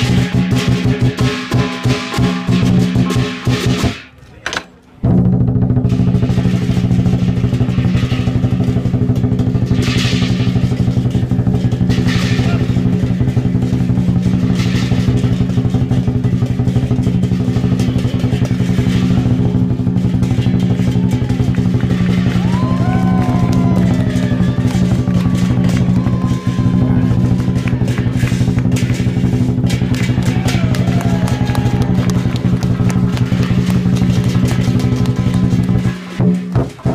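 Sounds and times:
crashing cymbal strikes: 0.0 - 4.0
drum beaten in fast roll: 0.0 - 4.1, 5.0 - 36.9
voices: 4.0 - 5.1, 12.1 - 12.9.

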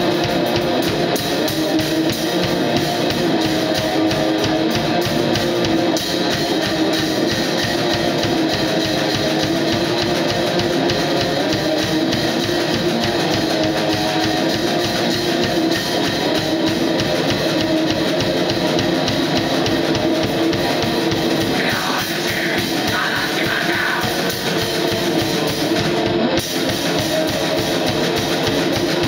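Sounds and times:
distorted electric guitar strumming: 0.0 - 29.0
fast drumming on drum kit: 0.0 - 29.0
person's voice: 21.5 - 24.3.

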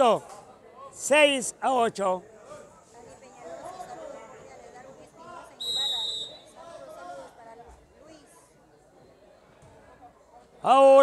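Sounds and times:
spectators chattering: 0.0 - 11.0
referee whistle blast: 5.6 - 6.6.

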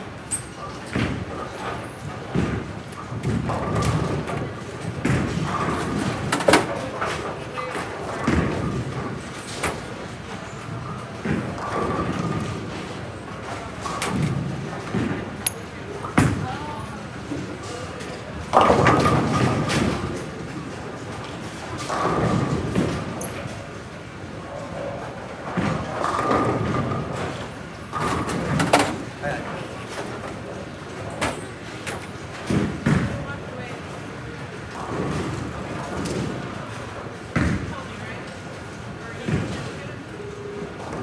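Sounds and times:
bowling balls hitting pins: 0.8 - 15.4, 17.4 - 23.7, 24.4 - 33.3, 34.6 - 38.0.

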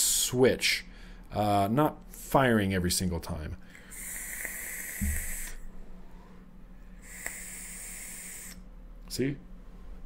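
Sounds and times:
air hissing through atomizer: 3.7 - 5.7, 6.9 - 8.7.

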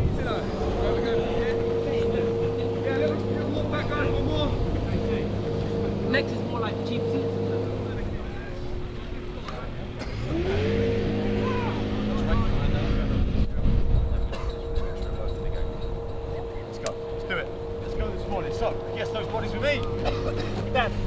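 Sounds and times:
engine running: 0.0 - 21.0
faint voices talking: 0.0 - 21.0.

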